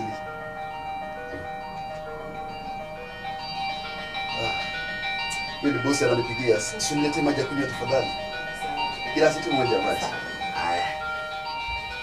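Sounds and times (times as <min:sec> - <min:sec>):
slow melody of long held notes: 0:00.0 - 0:12.0.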